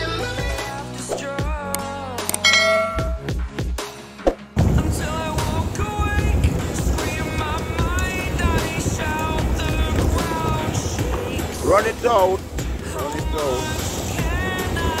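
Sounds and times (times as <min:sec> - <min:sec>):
background music: 0:00.0 - 0:15.0
short bell-like ding: 0:02.4 - 0:03.4
boat engine rumble on choppy water: 0:04.6 - 0:15.0.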